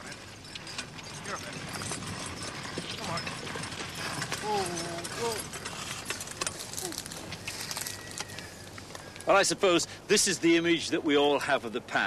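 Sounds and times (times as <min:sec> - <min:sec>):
hooves plodding on soil: 0:00.0 - 0:09.5.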